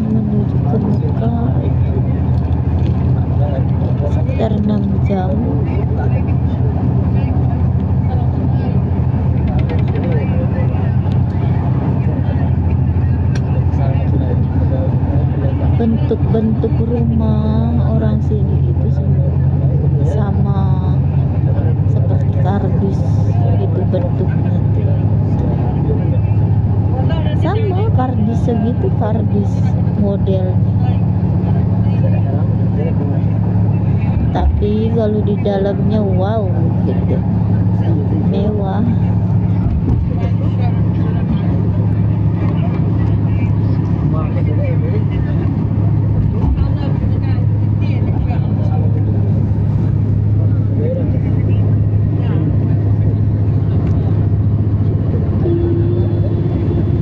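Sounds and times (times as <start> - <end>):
indistinct voices talking: 0.0 - 57.0
vehicle cabin engine and road drone: 0.0 - 57.0.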